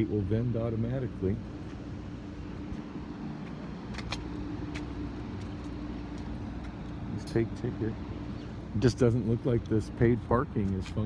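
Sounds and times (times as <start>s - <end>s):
low city hum and rumble: 0.0s - 11.0s.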